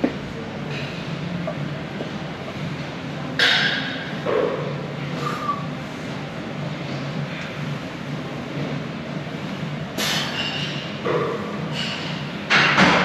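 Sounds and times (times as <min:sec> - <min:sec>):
gym room noise: 0:00.0 - 0:13.0.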